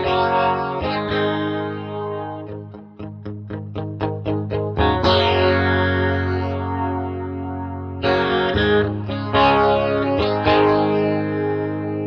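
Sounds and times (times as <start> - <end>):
electric guitar chord with flanger: 0.0 - 12.0.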